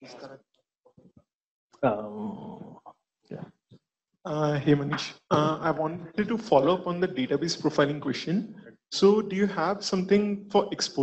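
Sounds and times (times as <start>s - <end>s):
man's drawn-out wordless voice: 4.3s - 11.0s.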